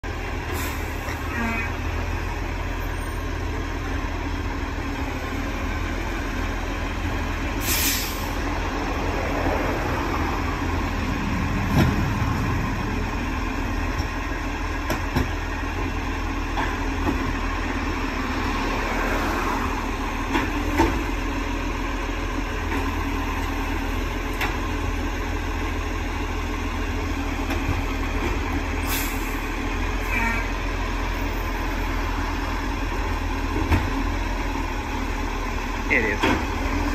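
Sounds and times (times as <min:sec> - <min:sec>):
diesel truck engine idling: 0:00.0 - 0:36.9.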